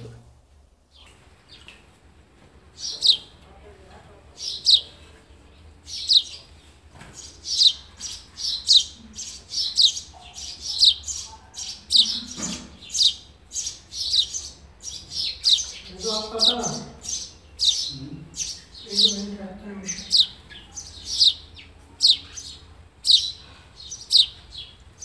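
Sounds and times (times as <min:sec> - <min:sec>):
nestlings chirping: 0:02.7 - 0:25.0.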